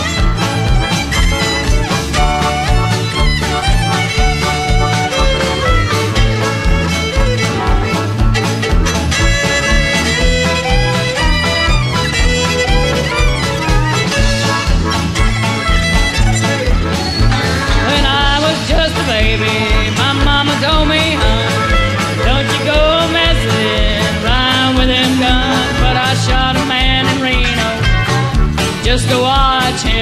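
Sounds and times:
country band playing: 0.0 - 30.0
fiddle leading: 0.0 - 30.0
steady drum beat: 0.0 - 30.0.

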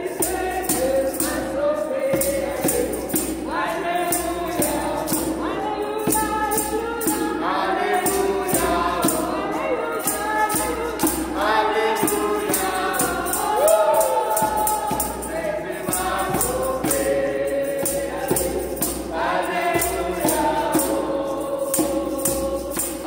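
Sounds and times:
hand drum beat: 0.0 - 23.0
women singing gospel in unison: 0.0 - 23.0.

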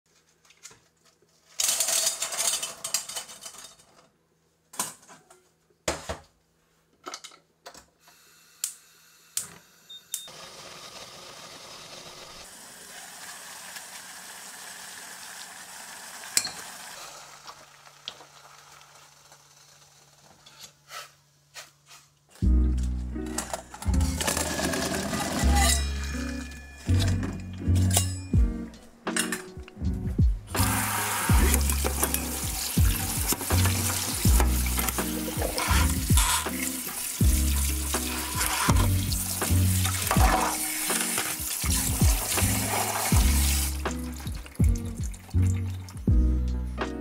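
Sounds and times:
music with bass beat: 27.1 - 28.7, 29.6 - 30.7, 31.3 - 36.6, 37.2 - 40.4, 41.6 - 47.0.

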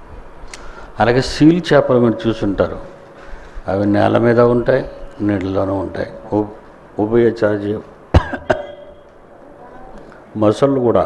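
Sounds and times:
man coughing: 8.1 - 8.9.

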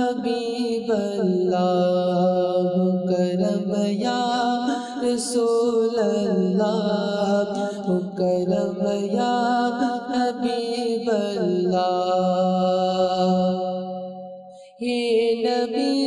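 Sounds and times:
man singing devotional song: 0.0 - 16.0.

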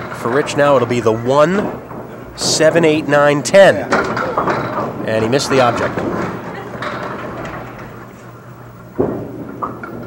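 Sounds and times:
bowling alley din: 0.0 - 10.0
steady low hum: 0.0 - 10.0.

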